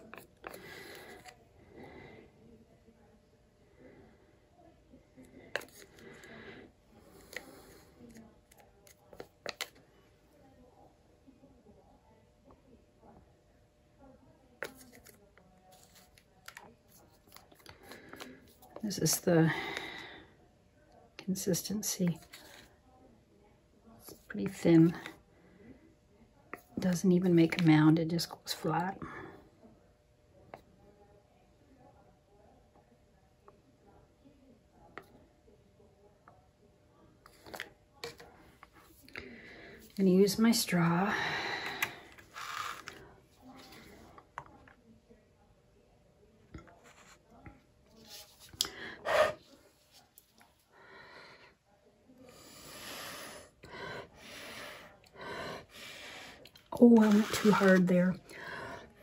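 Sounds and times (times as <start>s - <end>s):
plastic cup clicks and scrapes: 41.7s - 43.0s, 56.8s - 57.9s.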